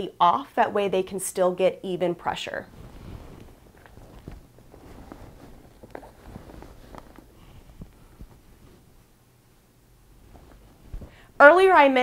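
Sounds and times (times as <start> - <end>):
denim rustling: 2.6 - 11.8.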